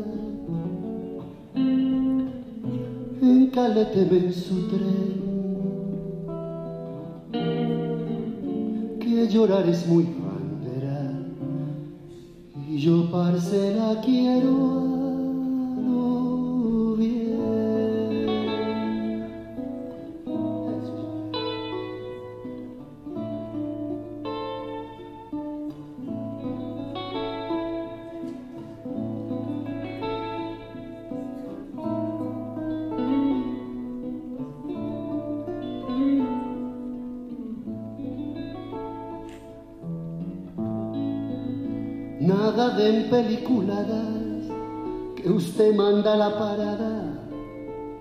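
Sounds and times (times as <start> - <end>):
acoustic guitar chords: 0.0 - 48.0
electric guitar chords: 0.0 - 48.0.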